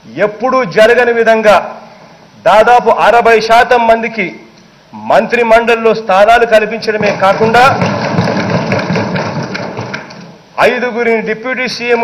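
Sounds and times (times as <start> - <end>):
people thumping wooden desks: 6.8 - 10.4.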